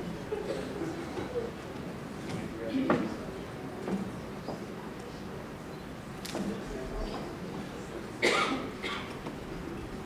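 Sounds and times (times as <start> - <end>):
person coughing: 8.2 - 9.1.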